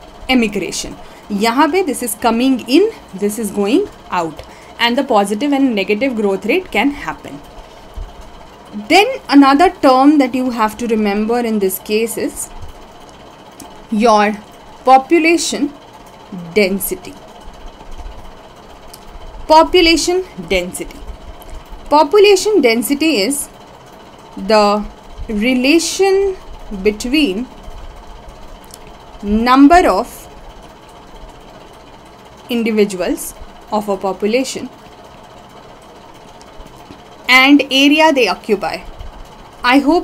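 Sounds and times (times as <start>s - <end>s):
low steady rumble: 0.0s - 40.0s
recording hiss and hum: 0.0s - 40.0s.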